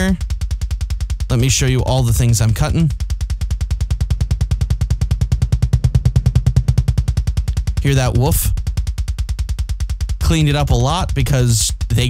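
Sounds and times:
fast double kick drum: 0:00.0 - 0:12.0.

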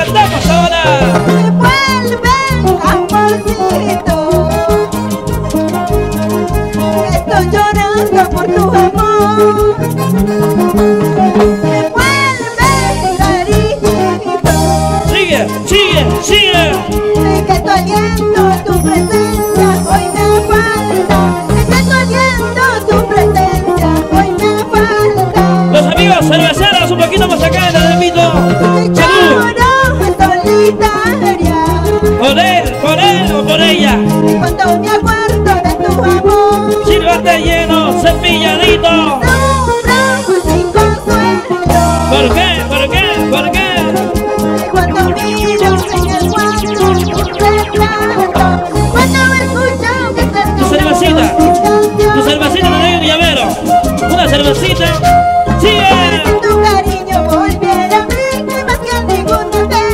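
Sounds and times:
drum kit beat: 0:00.0 - 0:24.6, 0:40.8 - 0:56.8
electric bass: 0:00.0 - 0:59.9
live band music: 0:00.0 - 0:59.9
melodic lead line: 0:00.0 - 0:59.9.

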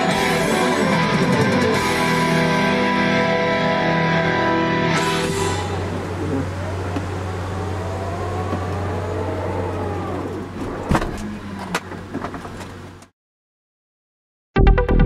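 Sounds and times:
steady low hum: 0:02.2 - 0:13.0
electric door motors whirring: 0:05.0 - 0:13.1.

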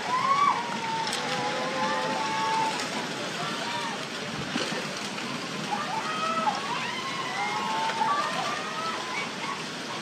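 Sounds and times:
people shouting: 0:00.0 - 0:02.8, 0:05.7 - 0:09.2
floodwater and debris rushing: 0:00.0 - 0:10.0.

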